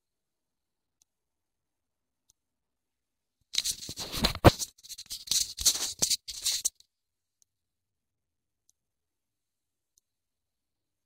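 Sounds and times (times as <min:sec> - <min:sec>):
phone rustling against microphone: 0:03.6 - 0:06.8.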